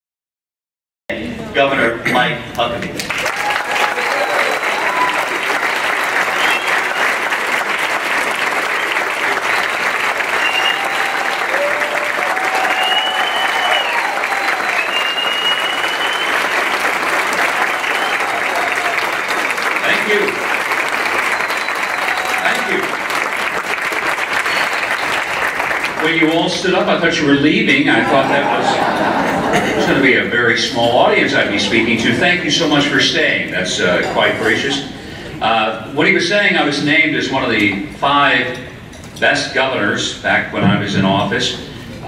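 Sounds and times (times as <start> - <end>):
audience applause: 3.0 - 26.5.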